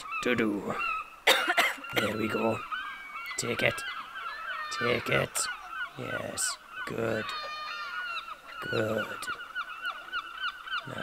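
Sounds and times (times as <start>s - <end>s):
bird chirping rapidly: 0.0s - 11.0s.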